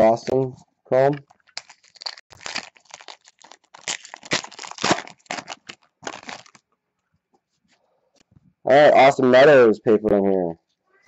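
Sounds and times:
foil wrapper crinkling and tearing: 0:01.4 - 0:06.6.

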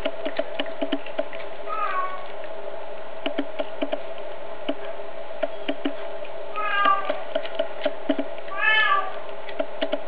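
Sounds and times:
cat chewing with crunching clicks: 0:00.0 - 0:02.6
steady low hum: 0:00.0 - 0:10.0
cat meowing: 0:01.7 - 0:02.3, 0:06.6 - 0:07.2, 0:08.5 - 0:09.3.

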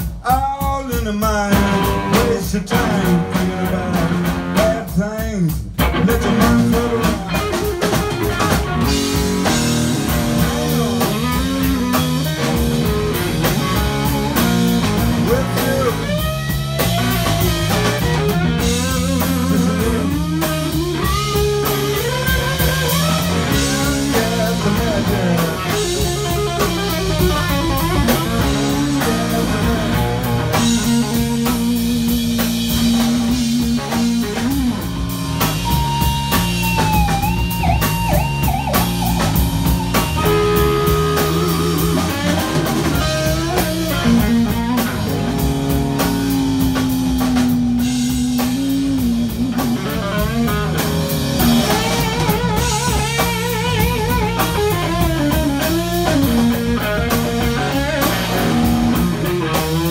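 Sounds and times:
bass guitar: 0:00.0 - 0:59.9
drum kit steady beat: 0:00.0 - 0:59.9
electric guitar lead: 0:01.1 - 0:59.9.

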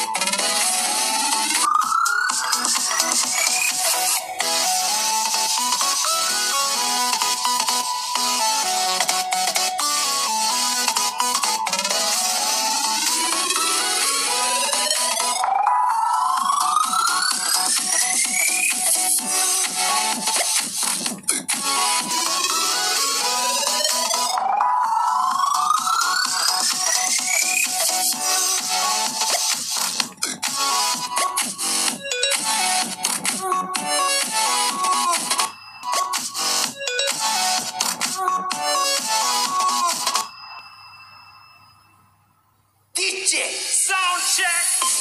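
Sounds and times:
electronic dance music on phone speaker: 0:00.0 - 0:41.6, 0:42.9 - 0:45.0.

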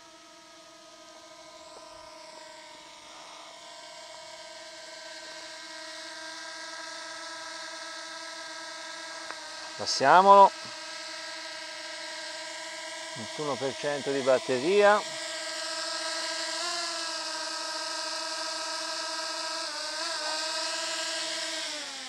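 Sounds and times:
drone propeller hum: 0:00.0 - 0:22.0.

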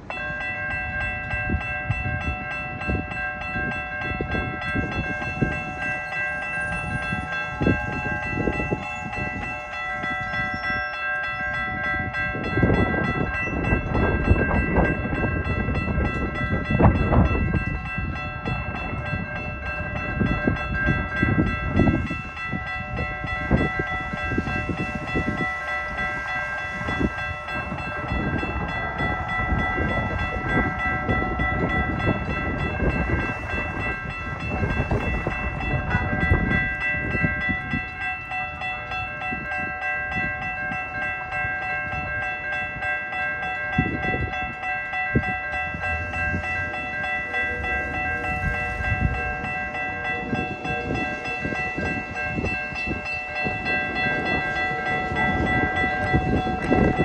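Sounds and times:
train rumble: 0:00.0 - 0:57.0
wind buffeting microphone: 0:00.0 - 0:57.0
steady tones: 0:00.1 - 0:57.0.

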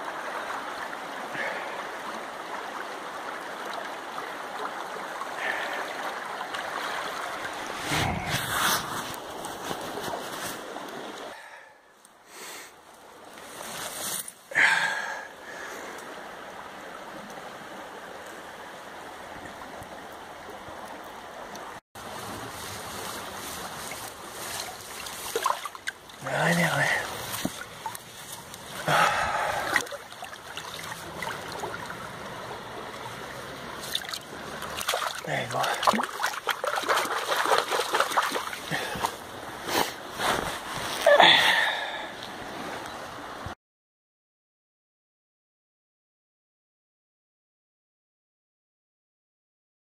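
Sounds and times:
river water rushing: 0:00.0 - 0:11.4, 0:12.9 - 0:43.4
microphone handling noise: 0:07.8 - 0:10.3
fish splashing in water: 0:24.6 - 0:26.2, 0:33.8 - 0:39.2.

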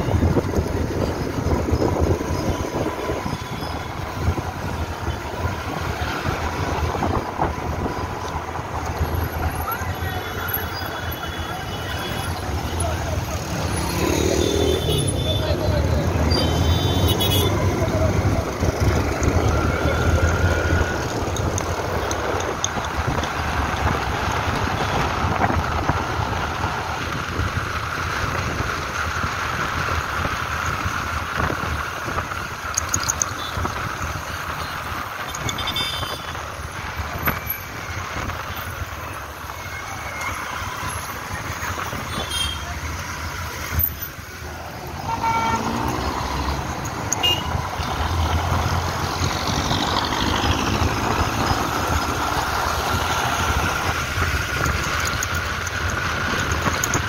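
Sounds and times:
car horn toots: 0:45.0 - 0:45.8, 0:47.1 - 0:47.6.

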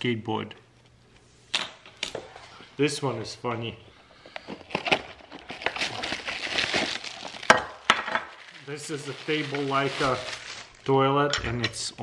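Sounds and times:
plastic bag crinkling: 0:04.4 - 0:10.9.

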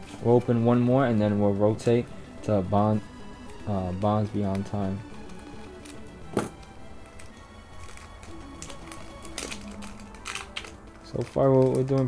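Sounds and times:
faint background music: 0:00.0 - 0:12.0
scissors snipping foil: 0:07.2 - 0:12.0.

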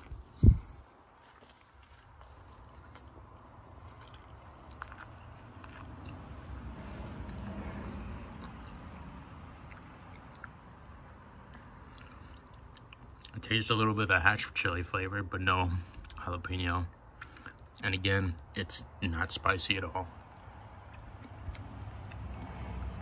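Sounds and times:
close-up chewing: 0:00.0 - 0:14.1, 0:15.7 - 0:16.2, 0:16.8 - 0:18.6, 0:20.0 - 0:23.0
wet mouth clicks: 0:08.3 - 0:13.4, 0:20.1 - 0:23.0.

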